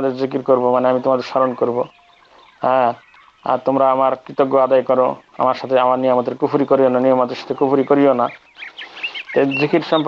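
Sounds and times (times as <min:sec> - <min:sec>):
man lecturing: 0:00.0 - 0:02.0, 0:02.6 - 0:10.0
faint high chirps: 0:00.1 - 0:10.0.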